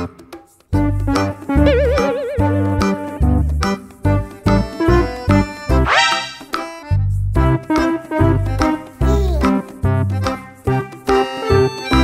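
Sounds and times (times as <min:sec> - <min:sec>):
playful background music: 0:00.0 - 0:12.0.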